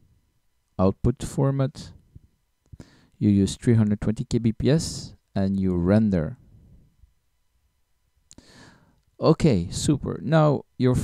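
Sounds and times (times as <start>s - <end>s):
soft breath in: 2.7s - 3.2s, 8.4s - 9.0s.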